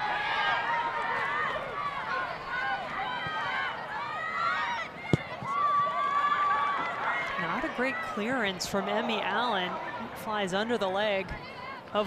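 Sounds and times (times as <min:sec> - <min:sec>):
ball being kicked: 0:05.1 - 0:05.5.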